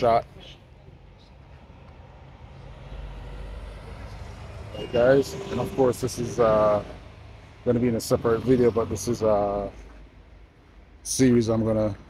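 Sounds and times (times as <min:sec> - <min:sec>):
bus passing: 0:00.0 - 0:10.9
street traffic: 0:00.0 - 0:12.0.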